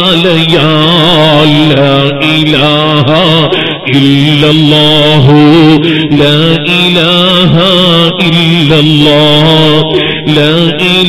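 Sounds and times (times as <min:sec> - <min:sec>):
man chanting devotional verse: 0:00.0 - 0:11.0.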